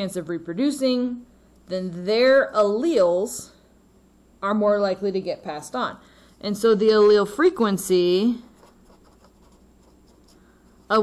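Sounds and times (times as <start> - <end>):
pen scratching on paper: 8.6 - 11.0.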